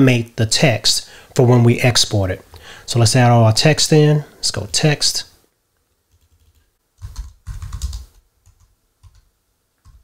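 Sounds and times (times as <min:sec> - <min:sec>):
typing on computer keyboard: 0:06.1 - 0:10.0.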